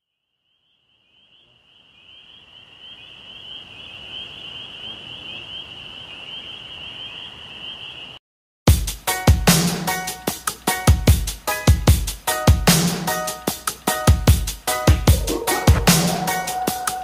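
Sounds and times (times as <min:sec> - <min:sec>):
buzzing chorus of calling animals: 0:15.1 - 0:17.0.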